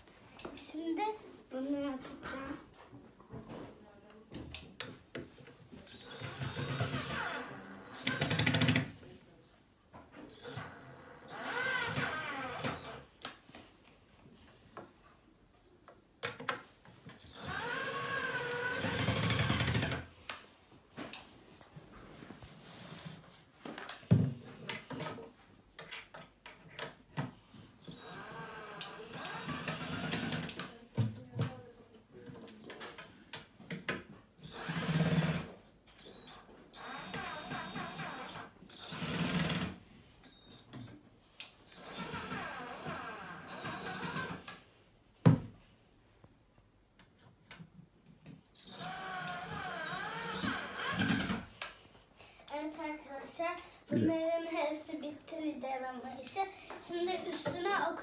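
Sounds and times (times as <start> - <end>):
cordless drill driving screws: 5.8 - 8.8, 10.2 - 13.0, 17.2 - 20.0, 27.8 - 30.7, 34.4 - 40.9, 41.6 - 44.6, 48.5 - 51.7.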